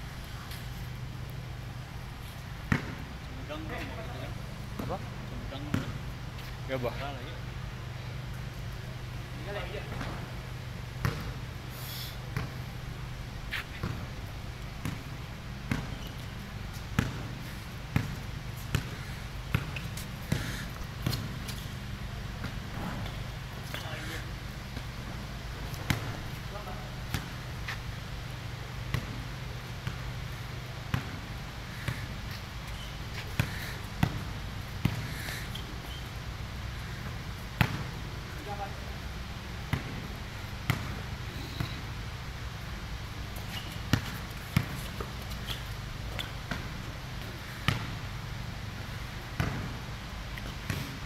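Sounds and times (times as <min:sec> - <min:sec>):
basketball bouncing on concrete: 0:02.6 - 0:03.0, 0:04.8 - 0:06.5, 0:11.0 - 0:11.4, 0:12.4 - 0:12.6, 0:13.5 - 0:14.0, 0:14.8 - 0:21.7, 0:25.6 - 0:27.8, 0:28.9 - 0:29.2, 0:29.8 - 0:30.1, 0:30.9 - 0:31.2, 0:31.8 - 0:35.7, 0:37.6 - 0:38.7, 0:39.7 - 0:40.1, 0:40.7 - 0:41.8, 0:43.4 - 0:45.4, 0:46.1 - 0:48.0, 0:49.4 - 0:49.8.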